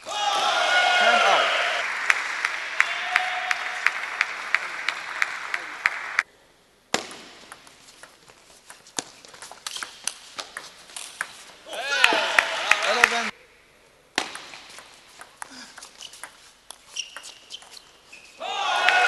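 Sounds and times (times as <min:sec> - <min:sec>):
crowd cheering: 0:00.0 - 0:06.2, 0:11.7 - 0:13.3, 0:18.4 - 0:19.0
crowd noise in hall: 0:00.0 - 0:06.3.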